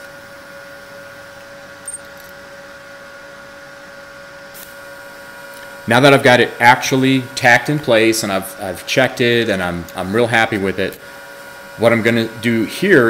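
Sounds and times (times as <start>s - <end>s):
welding arc buzzing: 0.0s - 13.0s.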